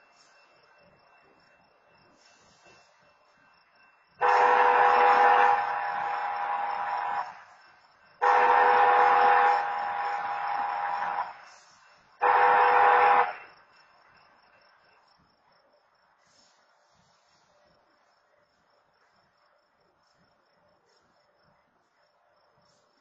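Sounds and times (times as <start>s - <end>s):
locomotive air horn blasts: 4.2s - 7.5s, 8.2s - 11.5s, 12.2s - 13.5s.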